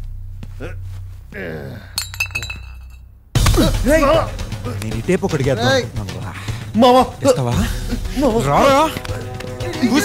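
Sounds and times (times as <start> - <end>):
glass bottles clinking: 2.0 - 3.0.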